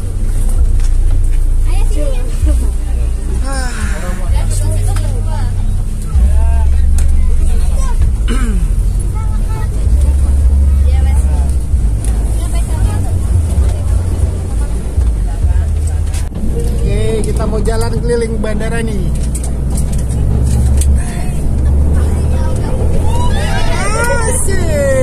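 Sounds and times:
bus engine rumbling: 0:00.0 - 0:25.0
passengers chattering: 0:00.0 - 0:25.0.

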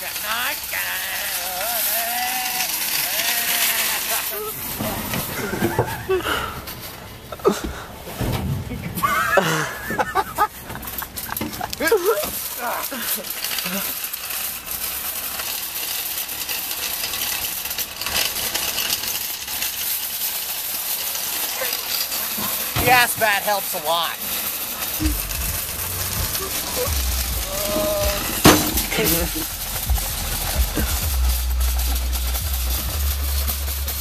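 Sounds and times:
shopping cart wheels rolling on asphalt: 0:00.0 - 0:34.0
people laughing: 0:01.0 - 0:04.7, 0:05.3 - 0:06.6, 0:08.7 - 0:13.9, 0:25.0 - 0:25.5, 0:26.1 - 0:31.4.

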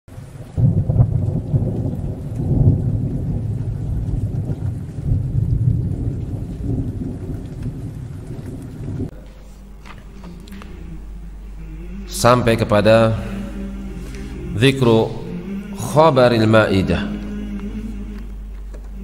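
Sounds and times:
rain: 0:00.1 - 0:19.0
thunder rumbling: 0:00.1 - 0:19.0.

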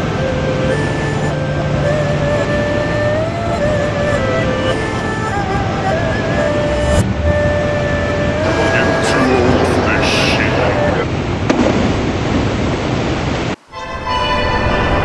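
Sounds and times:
background music with held notes: 0:00.0 - 0:11.1
waterfall rushing: 0:00.4 - 0:11.4.

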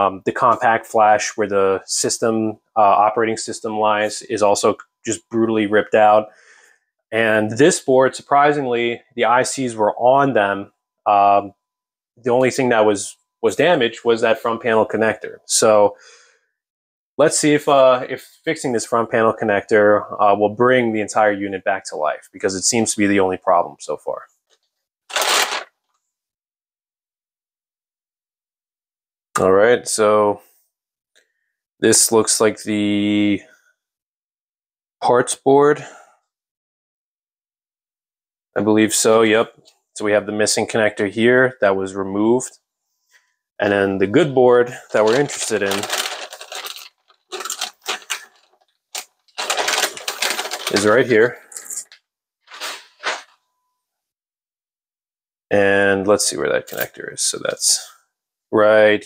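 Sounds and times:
plastic bag crinkling: 0:25.1 - 0:25.7, 0:44.9 - 0:53.4.

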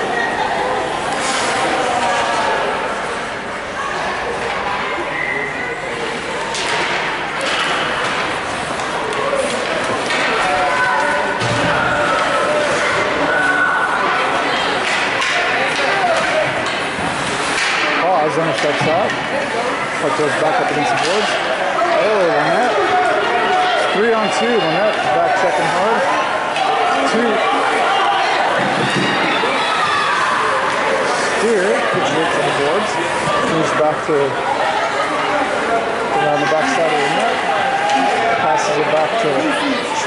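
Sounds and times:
people's voices: 0:00.0 - 0:40.0
hockey sticks and puck clacking: 0:06.4 - 0:22.0.

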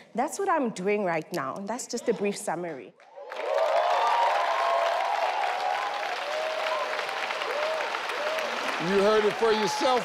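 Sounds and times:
audience applauding: 0:03.2 - 0:10.0.

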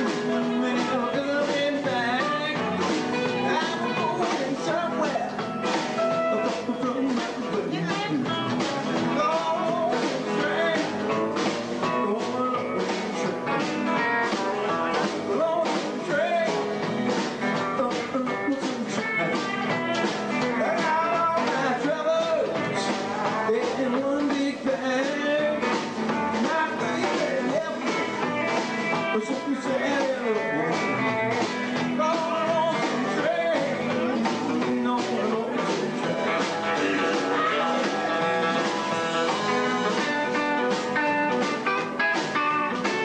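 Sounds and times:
bass guitar: 0:00.0 - 0:43.0
drums driving beat: 0:00.0 - 0:43.0
electric guitar: 0:00.0 - 0:43.0
man singing: 0:00.0 - 0:43.0
strummed acoustic guitar: 0:00.0 - 0:43.0.

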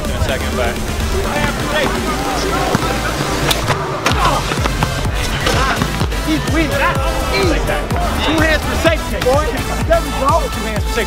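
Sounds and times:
basketball bouncing on asphalt: 0:02.6 - 0:03.1, 0:04.1 - 0:06.4.

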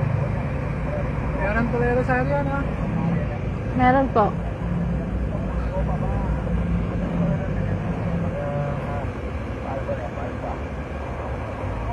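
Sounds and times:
faint voices: 0:00.0 - 0:11.9
road noise: 0:00.0 - 0:11.9
van engine rumble: 0:00.0 - 0:11.9.

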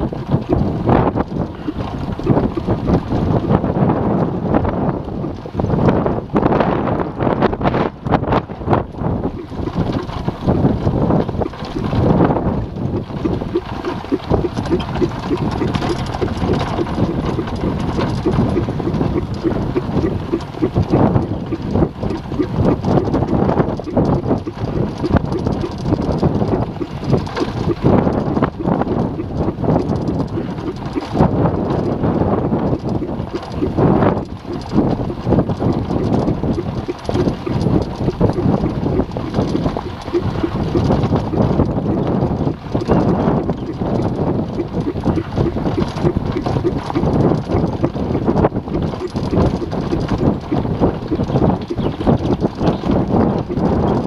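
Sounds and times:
wind buffeting microphone: 0:00.0 - 0:54.0
cart rattling and knocking: 0:08.8 - 0:54.0.

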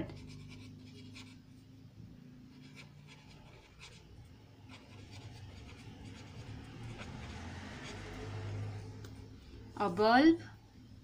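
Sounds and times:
pen scratching on paper: 0:00.0 - 0:01.4, 0:02.5 - 0:08.4.

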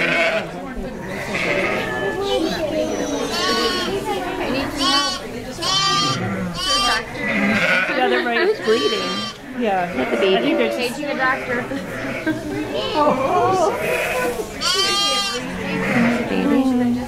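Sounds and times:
lamb bleating: 0:03.0 - 0:03.9, 0:04.8 - 0:08.0, 0:08.6 - 0:09.4, 0:12.8 - 0:16.3.

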